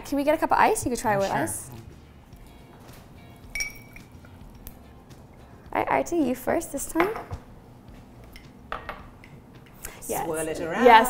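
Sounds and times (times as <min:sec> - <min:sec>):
ice clinking in glass: 0:03.5 - 0:04.2
glass knocking on countertop: 0:08.7 - 0:09.1.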